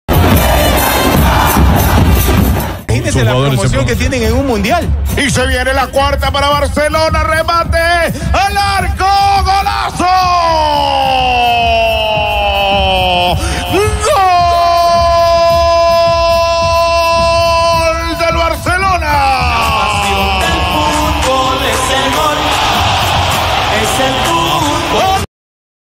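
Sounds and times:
crowd cheering: 0:00.1 - 0:03.6, 0:19.4 - 0:25.3
music: 0:00.1 - 0:25.3
commentator shouting goal cry: 0:02.9 - 0:25.3.

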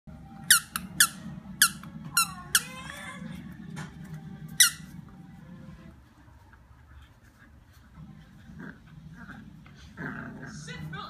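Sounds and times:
squeaky dog toy squeaking: 0:00.4 - 0:03.1, 0:04.6 - 0:04.9.

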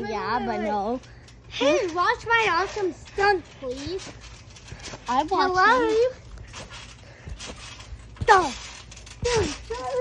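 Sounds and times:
outdoor background: 0:00.0 - 0:10.0
feet thumping on trampoline: 0:01.5 - 0:10.0.

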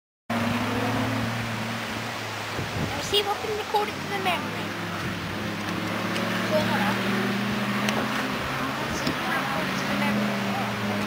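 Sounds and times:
broad rushing noise: 0:00.3 - 0:11.0
off-road vehicle engine running: 0:00.3 - 0:11.0.

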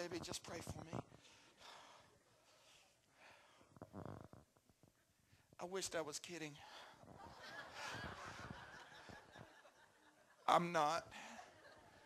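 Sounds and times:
congregation laughing: 0:07.1 - 0:12.0.

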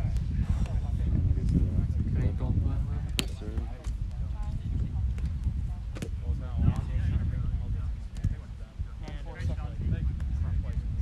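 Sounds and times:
people talking indistinctly: 0:00.0 - 0:11.0
steady low rumble: 0:00.0 - 0:11.0.

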